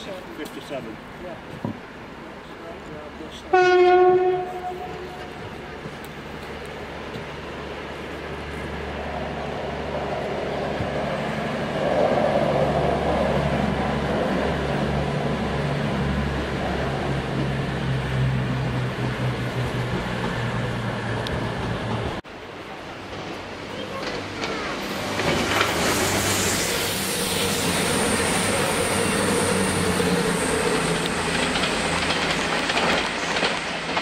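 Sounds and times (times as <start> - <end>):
diesel train engines humming: 0.0 - 34.0
rail noise: 0.0 - 34.0.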